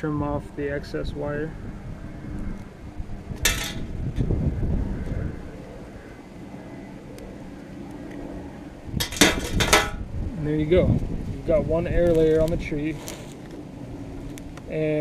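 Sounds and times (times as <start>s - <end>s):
knocks and clatter: 9.0s - 10.0s
handling rustle: 11.9s - 14.7s.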